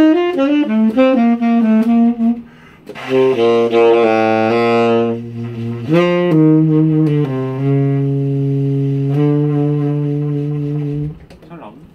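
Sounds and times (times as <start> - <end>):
tenor saxophone note: 0.0 - 11.2.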